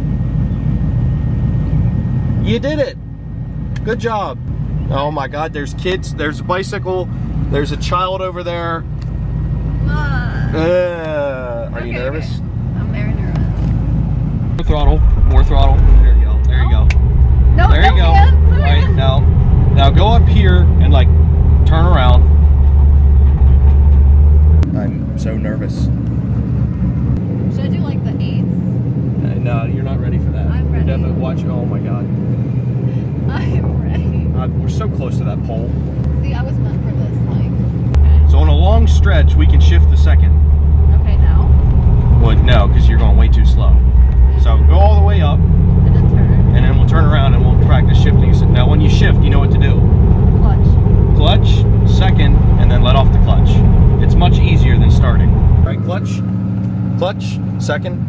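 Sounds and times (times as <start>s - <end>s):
engine droning inside car: 0.0s - 58.0s.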